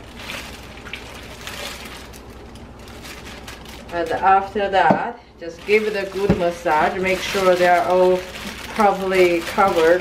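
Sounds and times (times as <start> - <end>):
plastic bag crinkling: 0.0 - 4.8, 5.4 - 10.0.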